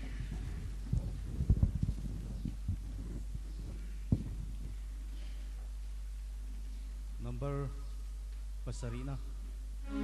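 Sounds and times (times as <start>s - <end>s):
soft low thuds: 0.0s - 6.0s
low electrical hum: 0.0s - 10.0s.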